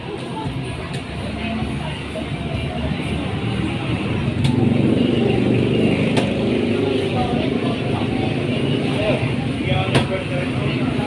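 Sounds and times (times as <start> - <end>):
murmuring voices: 0.0 - 11.0
vehicle engine running: 0.4 - 11.0.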